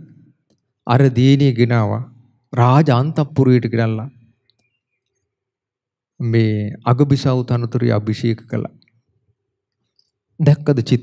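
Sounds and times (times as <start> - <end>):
man speaking: 0.9 - 4.1, 6.2 - 8.7, 10.4 - 11.0.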